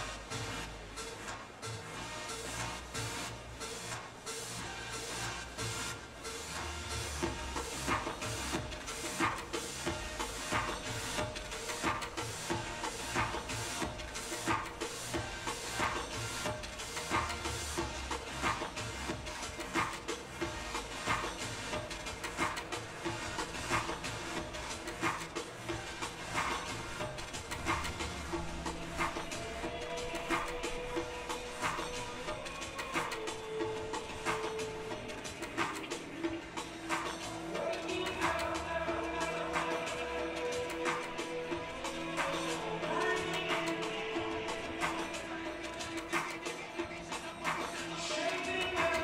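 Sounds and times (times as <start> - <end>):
sharp percussion hits: 6.4 - 49.0.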